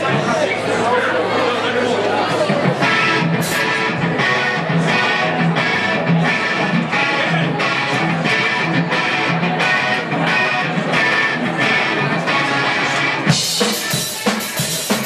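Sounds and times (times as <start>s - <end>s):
strummed guitar rock music: 2.1s - 15.0s.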